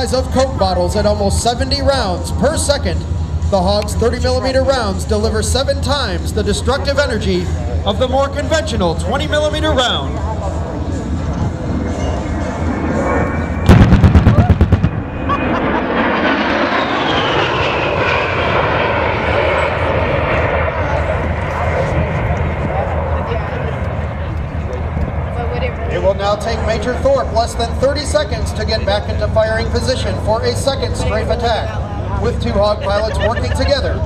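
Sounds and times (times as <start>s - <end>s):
jet passing by: 0.0s - 34.0s.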